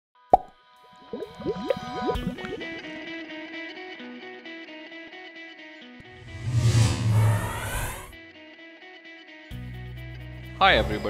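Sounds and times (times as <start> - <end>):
cartoon bubbly blips: 0.4 - 2.9.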